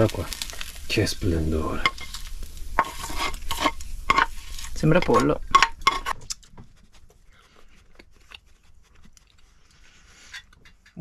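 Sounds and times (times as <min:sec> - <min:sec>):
oil sizzling in pan: 0:00.0 - 0:06.2
utensil scraping skillet: 0:00.0 - 0:11.0.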